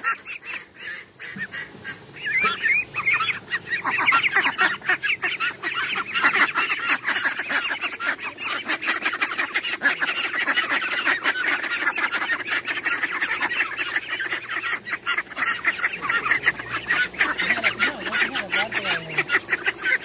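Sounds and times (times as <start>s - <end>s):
ducks quacking: 0.0s - 20.0s.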